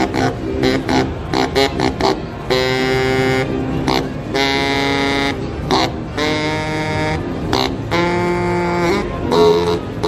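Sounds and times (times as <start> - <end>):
baritone saxophone playing: 0.0 - 10.0.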